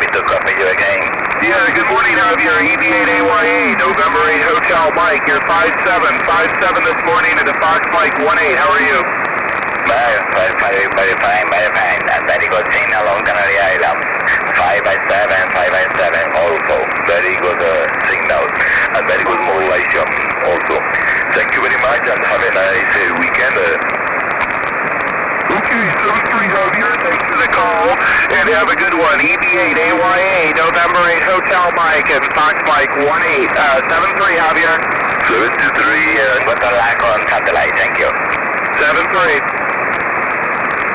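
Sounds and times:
man talking over radio: 0:00.0 - 0:09.2, 0:09.8 - 0:23.9, 0:25.4 - 0:39.6
steady radio hiss: 0:00.0 - 0:40.9.

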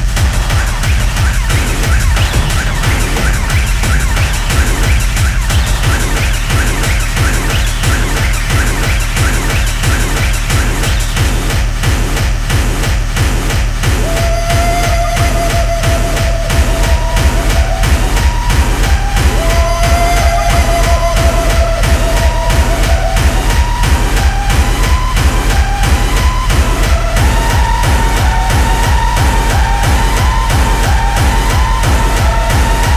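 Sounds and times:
fast kick-drum beat: 0:00.0 - 0:32.9.

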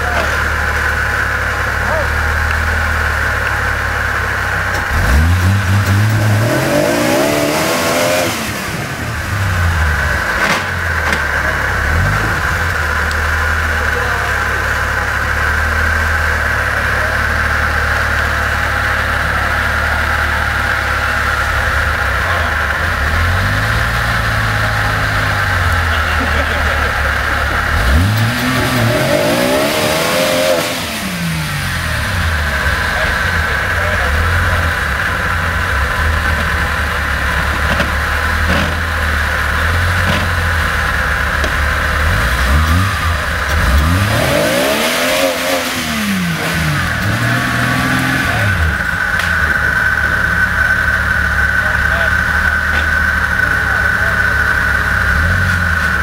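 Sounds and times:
engine revving under load: 0:00.0 - 0:56.0.

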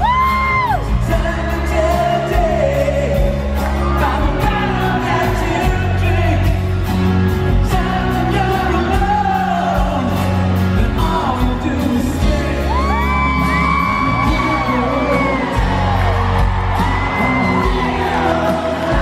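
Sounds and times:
acoustic guitars strummed: 0:00.0 - 0:19.0
live rock band: 0:00.0 - 0:19.0
man singing: 0:00.0 - 0:19.0.

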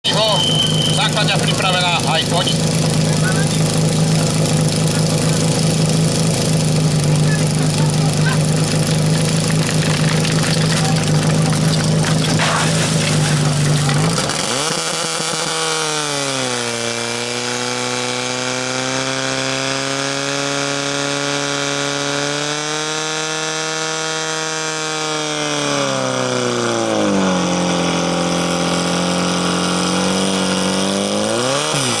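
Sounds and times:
pump engine running hard: 0:00.0 - 0:32.0.

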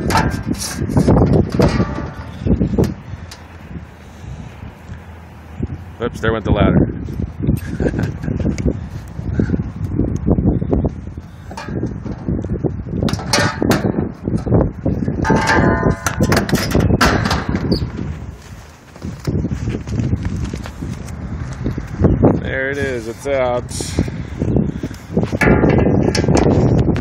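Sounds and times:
sheet metal clanking and rattling: 0:00.0 - 0:03.0, 0:13.0 - 0:17.8, 0:25.4 - 0:26.8.

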